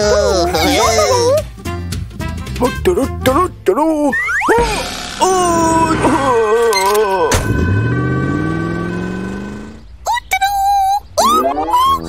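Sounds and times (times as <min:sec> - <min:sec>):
rising boing glide: 0:07.3 - 0:09.8.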